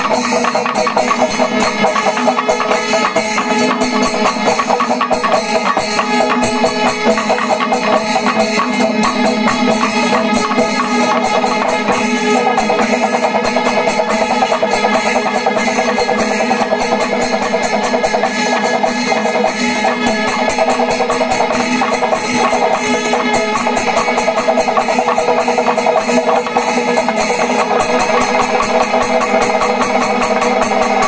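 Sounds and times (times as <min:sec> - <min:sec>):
fast dense drumming: 0:00.0 - 0:31.0
hand cymbals ringing: 0:00.0 - 0:31.0
steady held tones: 0:00.0 - 0:31.0.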